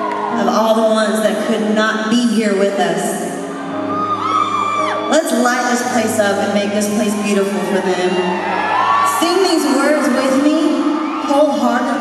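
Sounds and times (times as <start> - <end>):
soft piano chords: 0.0 - 11.0.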